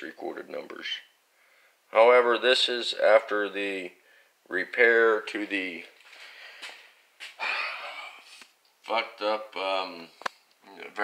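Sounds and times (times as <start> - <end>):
man exhaling: 7.4 - 8.4.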